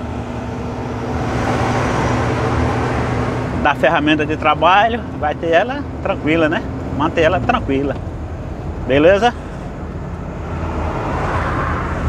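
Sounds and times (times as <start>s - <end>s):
truck engine and road rumble: 0.0s - 12.0s.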